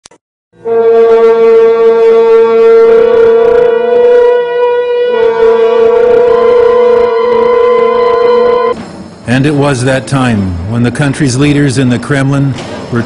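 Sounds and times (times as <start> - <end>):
held wind instrument note: 0.6 - 8.8.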